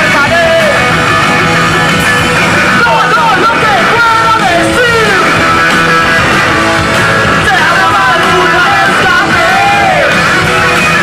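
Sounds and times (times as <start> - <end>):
singer yelling: 0.0 - 1.0, 2.6 - 11.0
live rock band playing: 0.0 - 11.0.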